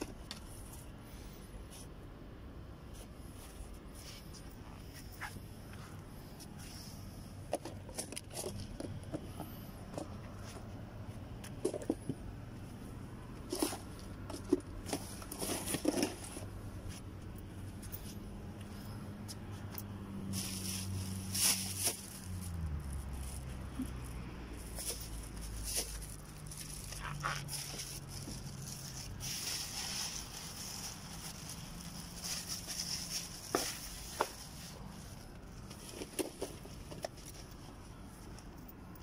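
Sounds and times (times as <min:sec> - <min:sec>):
gear clicking and rustling: 0:13.4 - 0:39.0.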